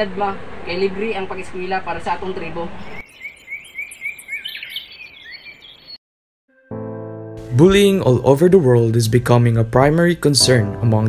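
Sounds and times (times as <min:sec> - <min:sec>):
birds chirping quickly: 0:02.7 - 0:06.0
faint high-pitched bird calls: 0:02.8 - 0:06.0
sustained guitar tone: 0:06.5 - 0:11.0.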